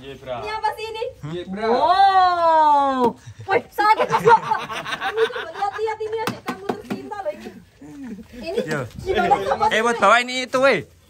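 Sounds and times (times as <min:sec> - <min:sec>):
young people talking: 0:00.3 - 0:10.6.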